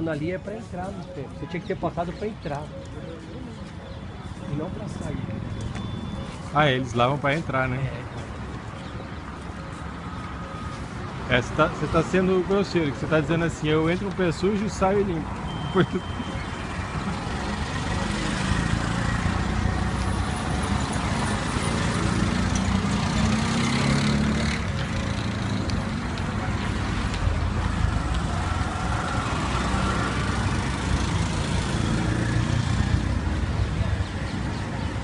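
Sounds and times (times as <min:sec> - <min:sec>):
road noise: 0:00.0 - 0:35.0
vehicle engines driving past: 0:04.2 - 0:35.0.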